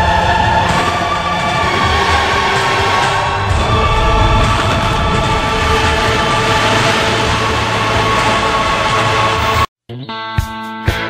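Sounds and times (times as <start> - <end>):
low rumble of rock blast: 1.8 - 9.3.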